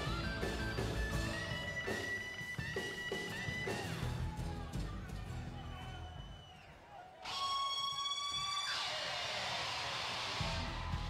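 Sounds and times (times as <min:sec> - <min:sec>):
driving rock beat: 0:00.0 - 0:05.6, 0:07.4 - 0:11.0.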